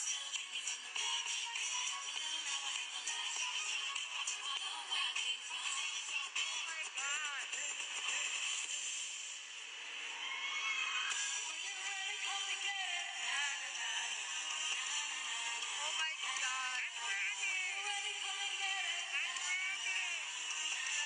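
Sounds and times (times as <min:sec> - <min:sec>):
pop dance music with vocals: 0:00.0 - 0:21.0.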